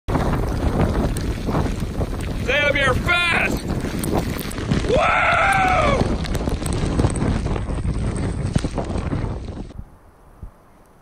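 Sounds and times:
surf: 0:00.1 - 0:09.8
strong wind rumbling on microphone: 0:00.1 - 0:11.0.

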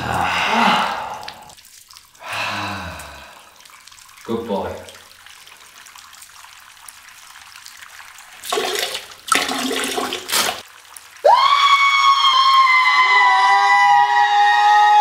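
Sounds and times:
liquid splashing into toilet bowl: 0:00.0 - 0:11.5.

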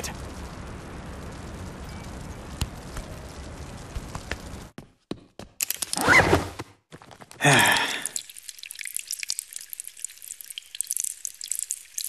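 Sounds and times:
water dripping: 0:05.6 - 0:06.0, 0:07.4 - 0:12.0.

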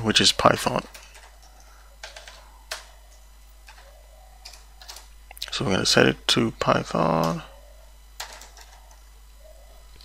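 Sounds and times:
faint steady hum: 0:00.0 - 0:10.0
computer keyboard keystrokes: 0:00.9 - 0:02.9, 0:08.2 - 0:09.0.

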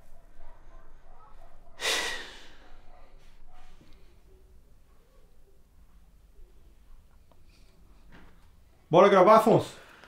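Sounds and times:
man sighing heavily: 0:01.8 - 0:02.6.

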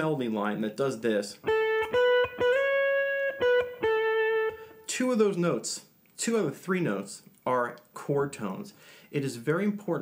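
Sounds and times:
clean electric guitar melody: 0:01.4 - 0:04.9.

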